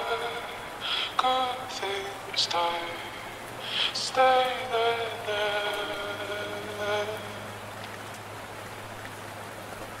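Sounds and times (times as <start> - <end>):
low hum: 0.0 - 9.2
rain-like hiss: 0.0 - 10.0.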